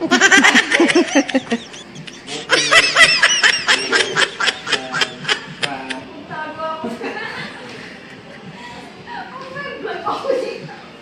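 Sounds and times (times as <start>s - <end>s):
person laughing: 0.0s - 6.0s.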